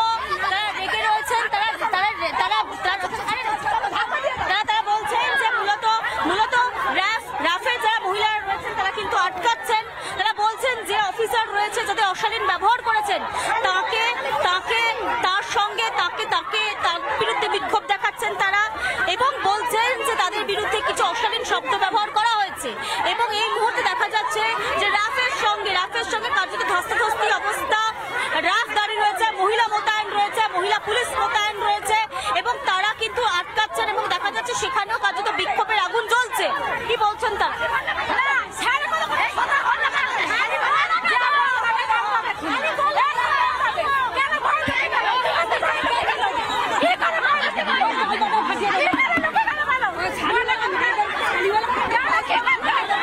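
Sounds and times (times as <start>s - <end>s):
people talking loudly: 0.0s - 53.0s.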